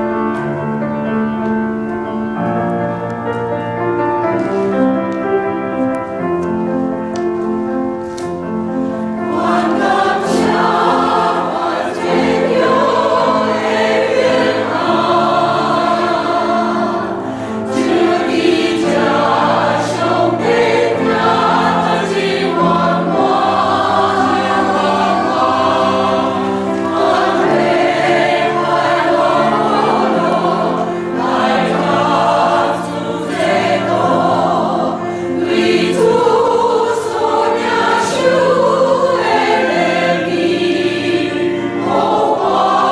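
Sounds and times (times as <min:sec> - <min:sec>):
choir singing held chords: 0:08.3 - 0:42.9.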